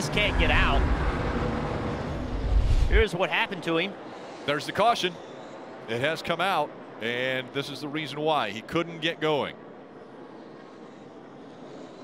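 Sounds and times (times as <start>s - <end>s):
noisy whoosh: 0.0s - 3.1s
deep low rumble: 0.2s - 3.0s.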